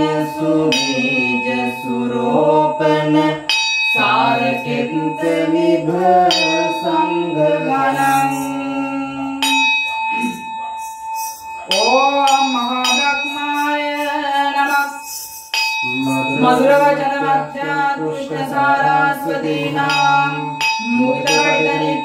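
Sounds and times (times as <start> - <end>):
person chanting a devotional song: 0.0 - 22.0
ritual bell ringing: 0.0 - 22.0.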